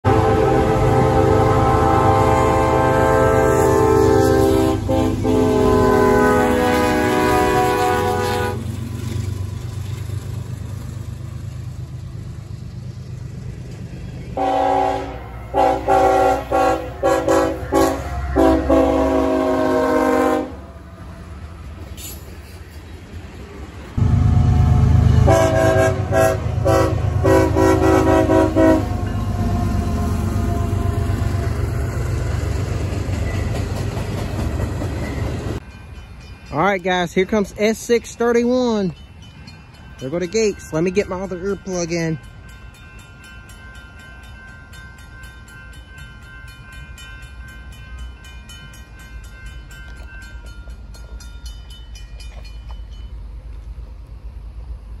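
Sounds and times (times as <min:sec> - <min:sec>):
locomotive air horns: 0:00.0 - 0:08.7, 0:14.4 - 0:20.8, 0:24.0 - 0:31.2
freight trains rumbling past: 0:00.0 - 0:55.0.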